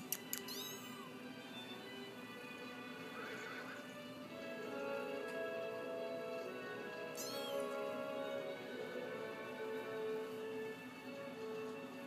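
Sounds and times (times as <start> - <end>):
background music: 0.0 - 12.0
kitten mewing: 0.4 - 1.0, 7.2 - 7.7.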